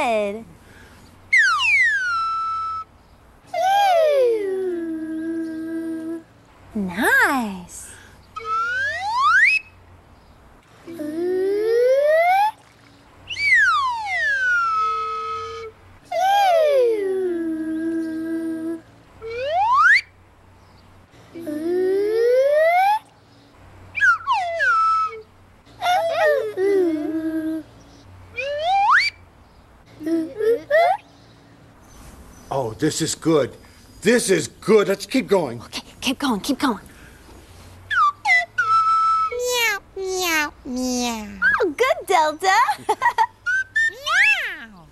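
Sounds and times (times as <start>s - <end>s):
slide whistle glides: 1.3s - 2.9s, 8.4s - 9.8s, 13.3s - 15.7s, 19.2s - 20.1s, 24.0s - 25.3s, 28.4s - 29.2s, 37.9s - 39.6s, 43.5s - 44.4s
voices imitating whistle swoops: 1.3s - 5.7s, 8.3s - 9.8s, 11.3s - 12.6s, 13.2s - 20.1s, 21.8s - 29.2s, 37.8s - 41.8s, 43.4s - 44.8s.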